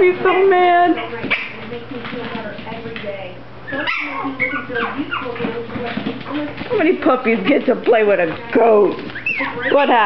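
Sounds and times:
puppies yipping and whimpering: 0:00.3 - 0:01.6, 0:03.7 - 0:05.6, 0:09.0 - 0:10.0.

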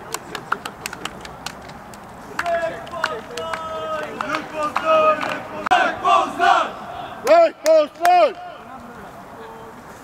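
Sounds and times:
football supporters chanting: 0:02.4 - 0:07.6.

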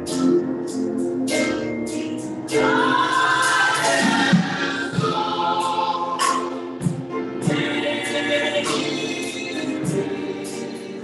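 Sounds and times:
drum kit with cymbals: 0:00.0 - 0:11.0
choir singing a hymn: 0:02.5 - 0:11.0.

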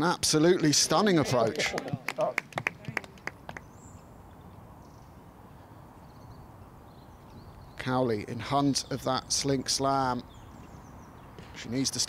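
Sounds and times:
hand claps: 0:01.4 - 0:03.7.

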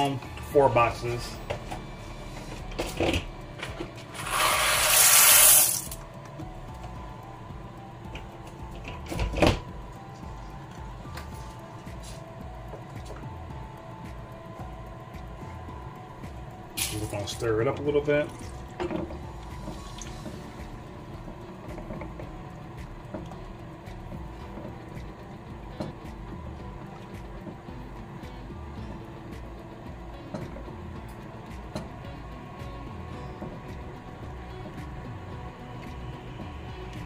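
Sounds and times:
water boiling: 0:14.9 - 0:37.0.

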